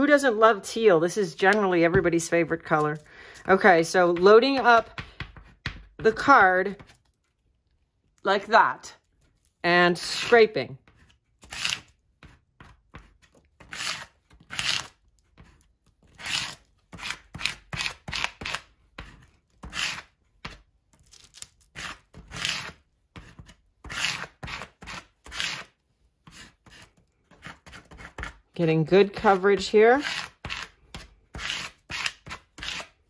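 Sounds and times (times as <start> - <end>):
plastic card scraping paint on paper: 9.0 - 20.6, 21.7 - 28.4, 29.1 - 33.0.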